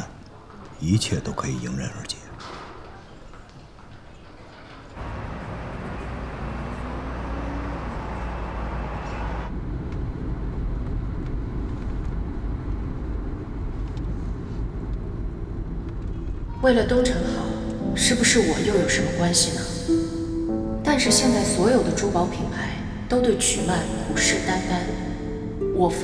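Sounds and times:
cars driving past: 5.0 - 10.6.

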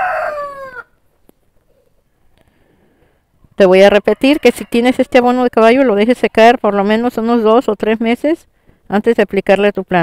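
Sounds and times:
rooster crowing: 0.0 - 1.0, 4.0 - 5.3.

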